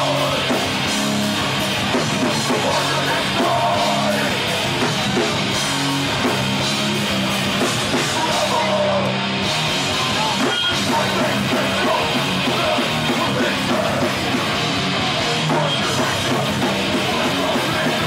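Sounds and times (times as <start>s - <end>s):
bass holding low chords: 0.0s - 18.0s
distorted electric guitars: 0.0s - 18.0s
fast drums: 0.0s - 18.0s
hardcore band playing live: 0.0s - 18.0s.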